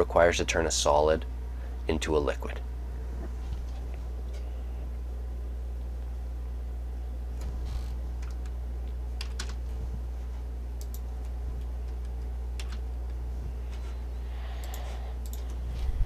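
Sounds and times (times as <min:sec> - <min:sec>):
low electrical hum: 0:00.0 - 0:16.0
light clicks at a computer: 0:10.8 - 0:13.2, 0:14.6 - 0:15.6.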